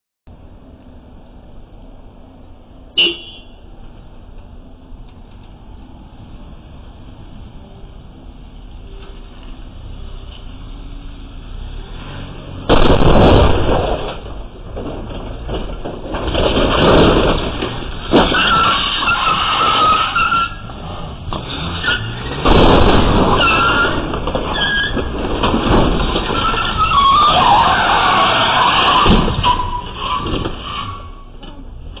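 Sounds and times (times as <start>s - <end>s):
car crash impact: 11.2s - 31.4s
loud jolts: 12.0s - 31.2s
tyres squealing and scraping: 14.0s - 32.0s.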